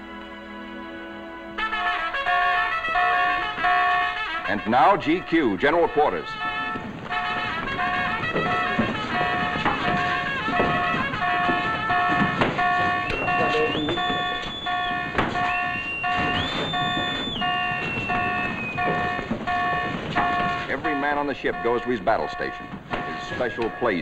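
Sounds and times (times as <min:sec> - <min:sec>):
electronic alarm bong: 0:01.8 - 0:24.0
sharp knocks: 0:06.4 - 0:24.0
whistle-like tone: 0:12.9 - 0:19.2.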